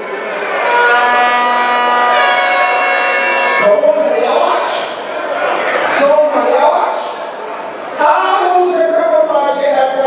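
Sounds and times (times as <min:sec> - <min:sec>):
noisy crowd: 0:00.0 - 0:10.0
air horn blast: 0:00.6 - 0:04.0.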